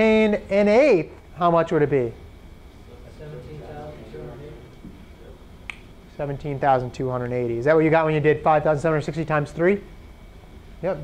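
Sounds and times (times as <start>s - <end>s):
sharp snap-like click: 5.6s - 5.9s.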